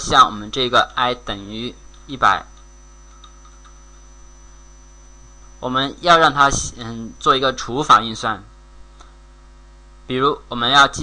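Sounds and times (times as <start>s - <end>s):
electrical mains hum: 0.0s - 11.0s
thin high whine: 0.0s - 11.0s.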